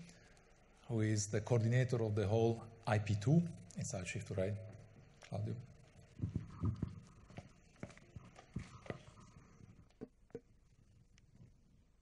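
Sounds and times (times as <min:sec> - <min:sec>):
footsteps: 0:05.2 - 0:10.4.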